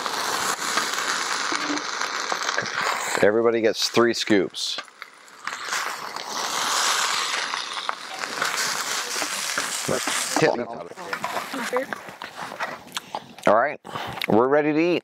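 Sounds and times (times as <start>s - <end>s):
fried rice sizzling on griddle: 0.0s - 12.5s
scraping on griddle: 0.0s - 12.9s.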